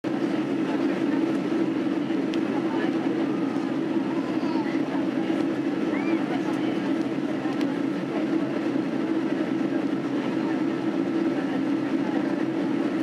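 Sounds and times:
airliner cabin engine and airflow noise: 0.0 - 13.0.

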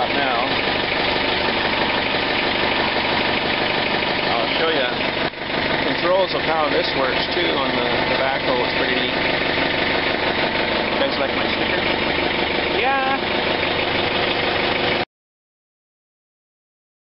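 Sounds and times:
diesel engine idling: 0.0 - 15.1.

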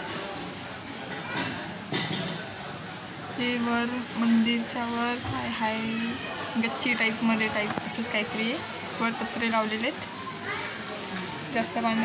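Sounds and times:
children talking and calling: 0.0 - 2.6, 3.4 - 12.0.

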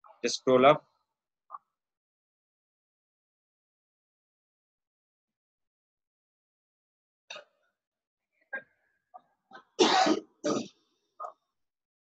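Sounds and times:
man coughing: 9.8 - 10.7.

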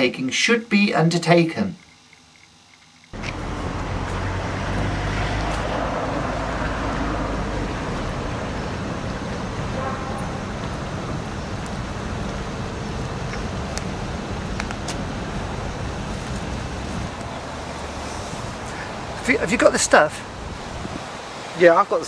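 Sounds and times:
road traffic noise: 3.1 - 22.0.

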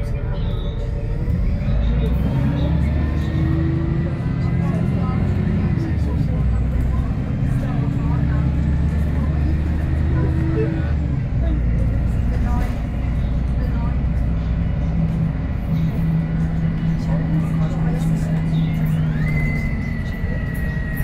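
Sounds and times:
bus diesel engine droning: 0.0 - 21.0
road noise: 0.0 - 21.0.

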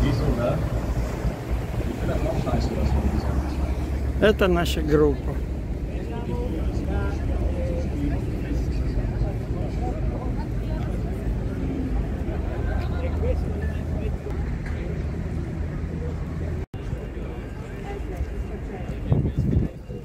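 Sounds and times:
steady low rumble: 0.0 - 16.7
chatter of many people: 0.0 - 20.0.

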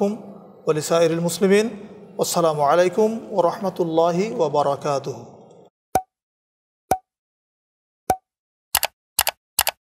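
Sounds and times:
pop sound effect: 6.9 - 7.1, 8.1 - 8.3.

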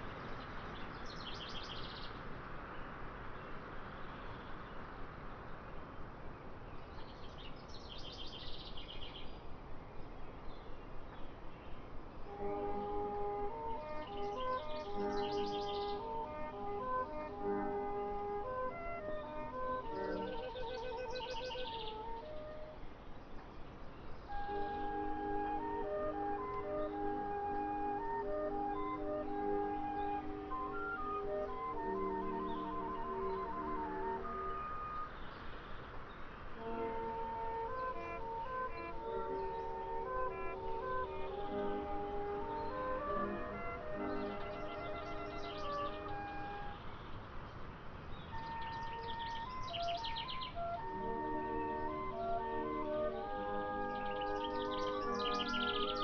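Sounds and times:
background music melody: 0.0 - 56.0
songbirds chirping: 0.0 - 56.0.

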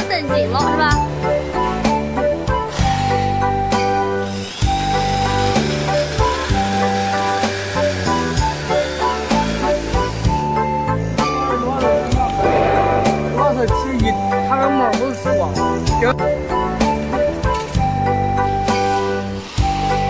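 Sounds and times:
background music: 0.0 - 20.0
electric drill driving screw into steel: 2.6 - 10.4.

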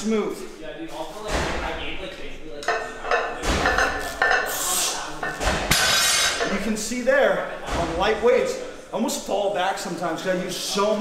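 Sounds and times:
barbell knocking: 2.7 - 4.6
weight plates clanking: 2.7 - 6.8.

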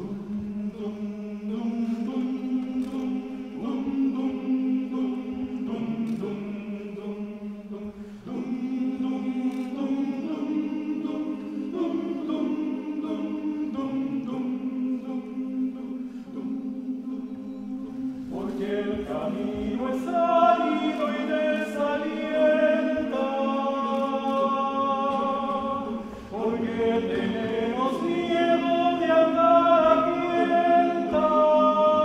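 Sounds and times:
male choir singing: 0.0 - 32.0.

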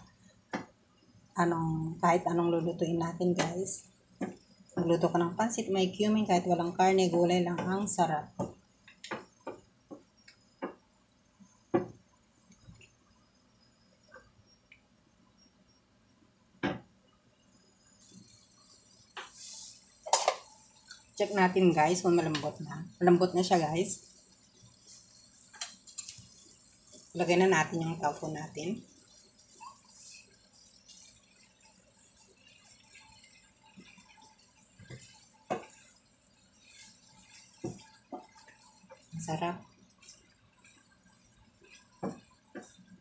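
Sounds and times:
faint sizzle from pan: 0.0 - 43.0
wooden spoon knocking a pan: 34.9 - 35.7
wooden spoon knocking frying pan: 34.9 - 35.8, 37.6 - 38.4.

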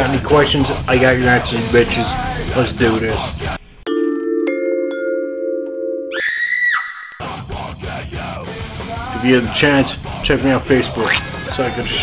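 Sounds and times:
mallet percussion chord: 3.9 - 6.1
high held tone: 3.9 - 7.2.

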